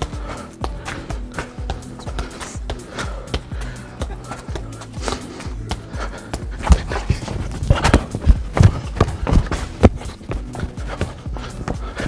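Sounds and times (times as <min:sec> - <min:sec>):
faint background music: 0:00.0 - 0:12.0
football thudding off feet: 0:00.7 - 0:12.0.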